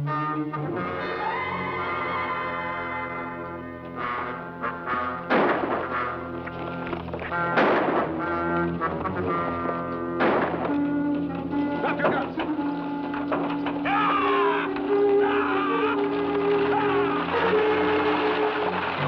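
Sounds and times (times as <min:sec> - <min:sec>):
dramatic orchestral western score: 0:00.0 - 0:19.0
loud sharp hits: 0:05.3 - 0:06.0, 0:10.2 - 0:10.8.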